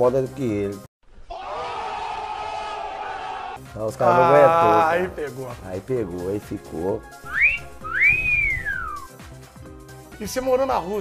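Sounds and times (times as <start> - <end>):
wolf whistle: 7.2 - 9.1.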